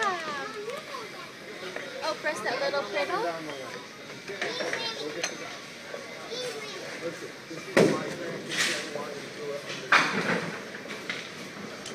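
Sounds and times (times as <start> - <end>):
people talking: 0.0 - 10.4.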